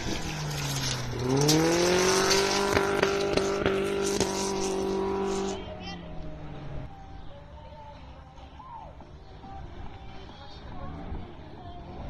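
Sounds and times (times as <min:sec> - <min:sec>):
racing car engine revving: 0:00.0 - 0:06.9.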